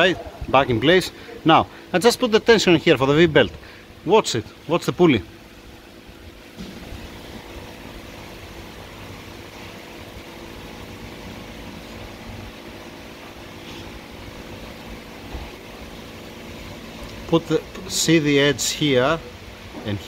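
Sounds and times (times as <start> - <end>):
steady mechanical hum: 0.0 - 20.0.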